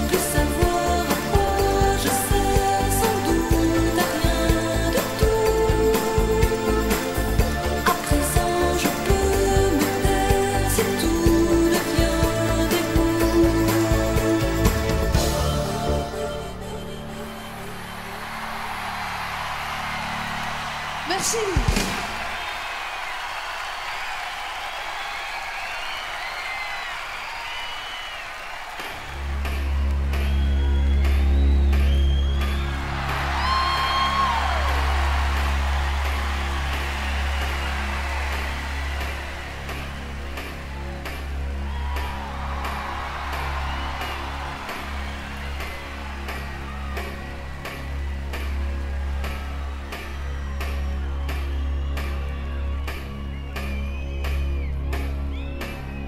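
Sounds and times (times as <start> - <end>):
crowd cheering and whistling: 16.9 - 56.0.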